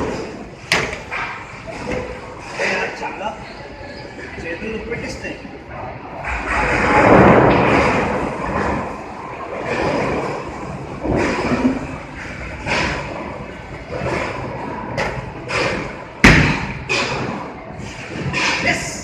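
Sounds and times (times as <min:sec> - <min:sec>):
bowling alley din: 0:05.8 - 0:19.0.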